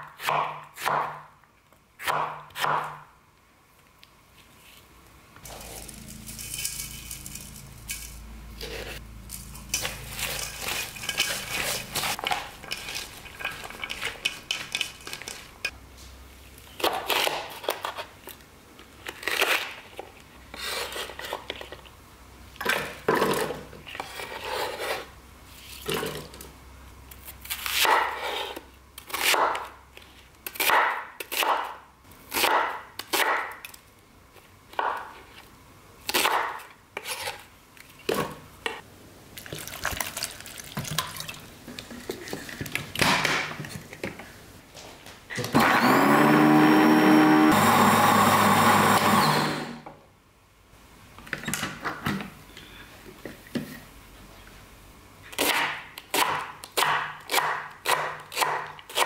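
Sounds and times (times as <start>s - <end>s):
knife chopping on wooden board: 0.0s - 1.3s, 2.0s - 3.0s, 55.4s - 59.0s
electric blender whining: 45.4s - 49.9s.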